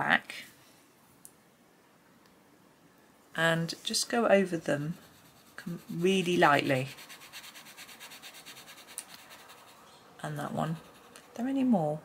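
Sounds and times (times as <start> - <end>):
coloured pencil scratching on paper: 4.6 - 11.6.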